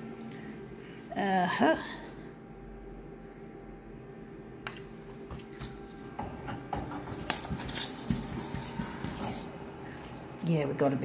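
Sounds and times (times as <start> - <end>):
photocopier humming: 4.0 - 11.0.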